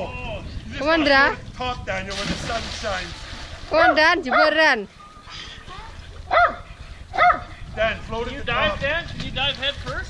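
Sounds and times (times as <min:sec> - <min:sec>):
small dog barking: 0:06.3 - 0:07.5.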